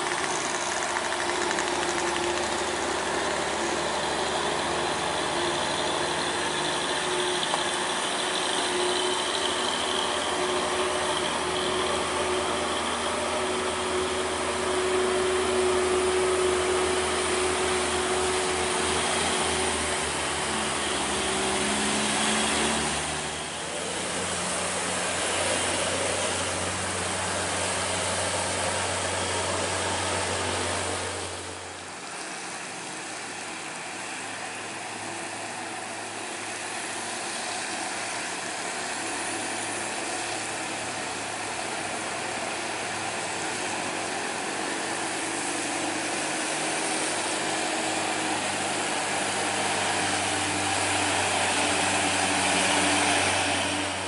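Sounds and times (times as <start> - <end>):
heavy diesel truck engines: 0.0 - 54.0
rain and tyres on wet road: 0.0 - 54.0.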